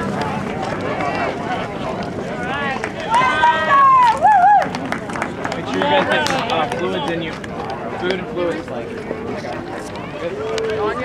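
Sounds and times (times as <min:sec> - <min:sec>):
spectators yelling: 0:02.4 - 0:04.8.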